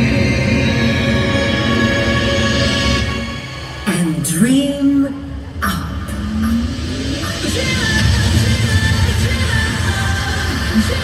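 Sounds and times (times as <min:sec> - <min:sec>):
low rumble: 0:00.0 - 0:11.0
parade music over loudspeakers: 0:00.0 - 0:11.0.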